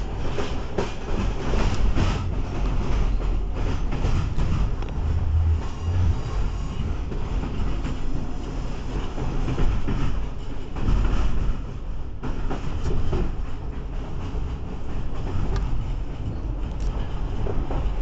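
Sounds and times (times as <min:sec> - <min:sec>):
train wheels rumbling on rails: 0:00.0 - 0:18.0.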